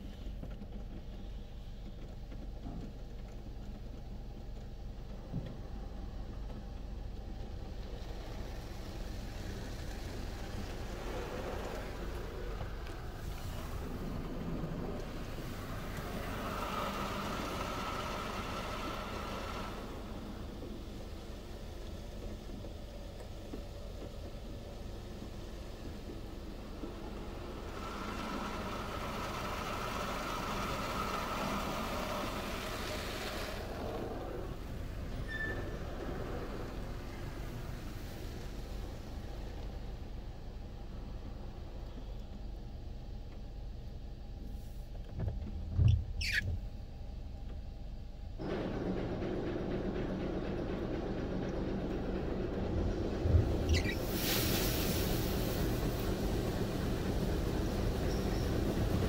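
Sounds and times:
low machine hum: 0.0 - 59.0
water jets spraying car: 6.8 - 40.4, 53.4 - 59.0.

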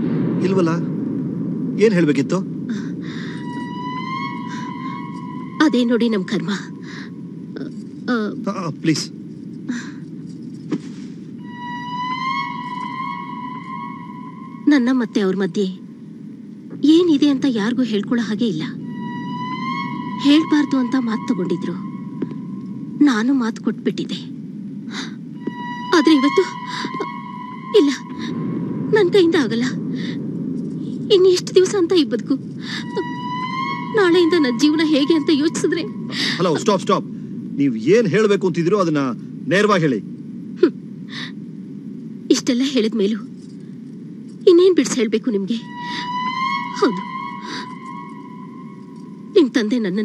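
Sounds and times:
low even hum: 0.0 - 50.0
sustained high electronic tone: 2.5 - 8.0, 11.4 - 16.1, 17.1 - 23.6, 25.4 - 37.6, 44.8 - 50.0
high held note: 3.2 - 7.5, 11.4 - 15.6, 18.6 - 23.1, 25.4 - 30.1, 32.7 - 37.3, 45.5 - 49.9.

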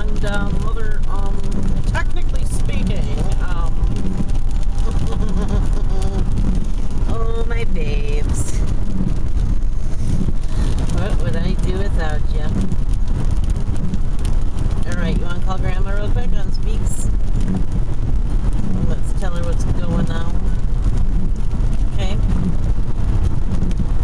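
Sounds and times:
car road and engine rumble: 0.0 - 24.0.

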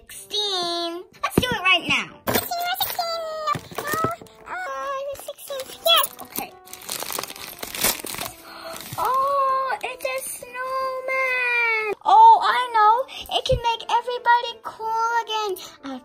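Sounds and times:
paper bag crinkling and tearing: 5.1 - 11.2.

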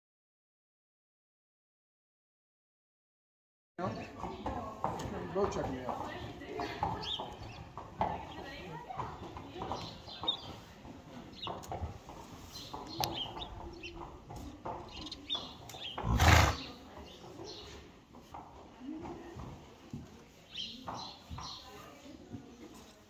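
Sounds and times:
faint voices: 3.8 - 23.0
horse snorting: 15.8 - 16.8.

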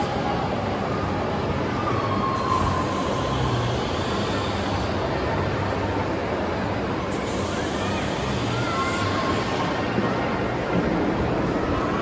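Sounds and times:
shopping mall background hum: 0.0 - 12.0.

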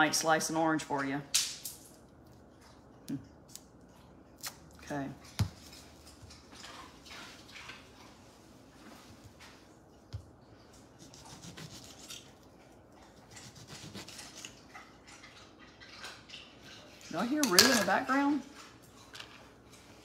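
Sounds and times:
knife cutting orange: 11.0 - 12.4, 13.3 - 14.6.

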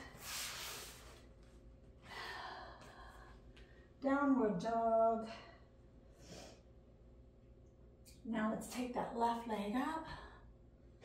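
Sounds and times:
woman breathing: 0.0 - 1.3, 2.0 - 4.0.

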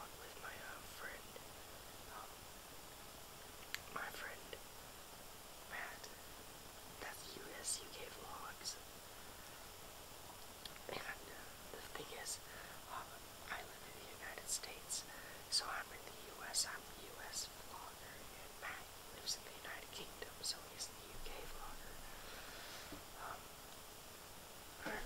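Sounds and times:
person whispering: 0.0 - 1.4, 2.1 - 2.4, 3.7 - 4.6, 5.7 - 6.2, 7.0 - 8.8, 10.7 - 22.1, 23.2 - 23.5, 24.8 - 25.0.

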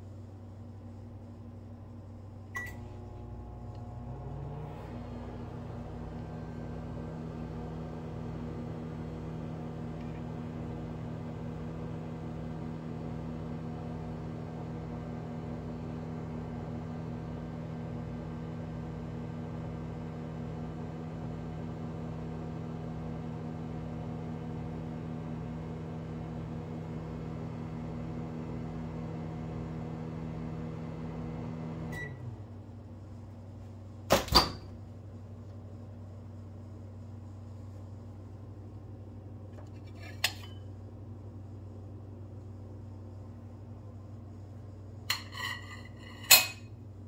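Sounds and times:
microwave oven humming: 0.0 - 47.0.

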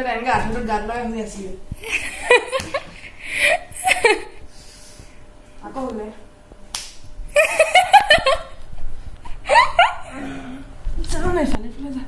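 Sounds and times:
hand smack: 6.7 - 7.1.

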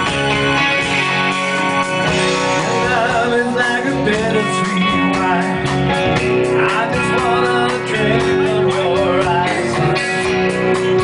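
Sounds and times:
electric guitar lead notes: 0.0 - 11.0
hard rock band playing live: 0.0 - 11.0.

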